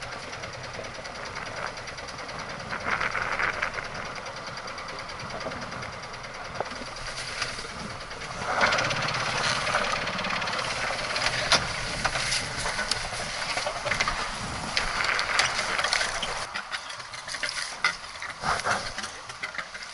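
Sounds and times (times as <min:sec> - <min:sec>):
rope and fittings knocking: 0:00.0 - 0:19.9
wind on microphone: 0:07.6 - 0:16.5.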